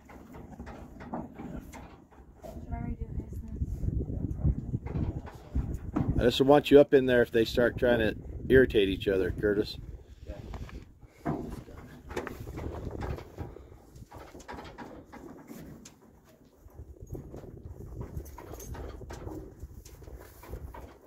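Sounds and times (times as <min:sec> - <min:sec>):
horses knocking in trailer: 0:00.0 - 0:02.6, 0:04.7 - 0:06.4, 0:11.1 - 0:21.0.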